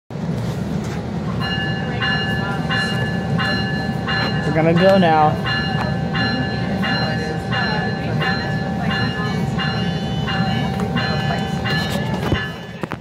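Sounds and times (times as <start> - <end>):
railcar engine rumble: 0.1 - 13.0
train bell ringing: 1.3 - 13.0.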